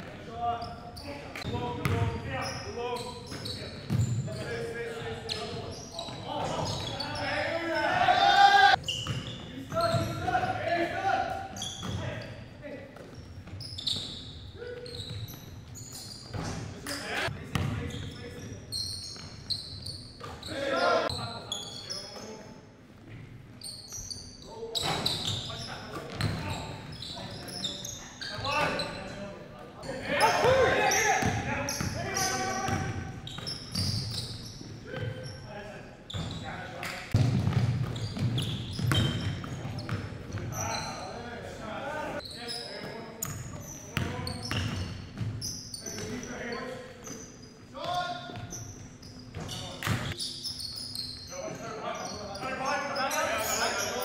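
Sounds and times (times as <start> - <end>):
sneakers squeaking: 0.0 - 54.0
players calling out: 5.1 - 12.3, 29.8 - 35.4
basketball bouncing on hardwood: 37.2 - 40.0.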